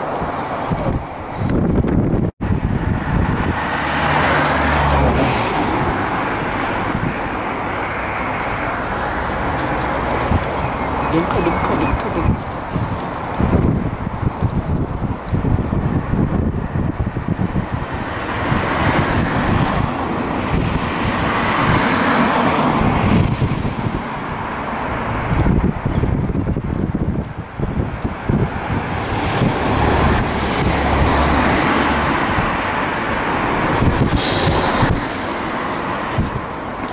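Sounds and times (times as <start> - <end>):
road traffic rushing: 0.0 - 36.9
wind buffeting microphone: 0.0 - 36.9.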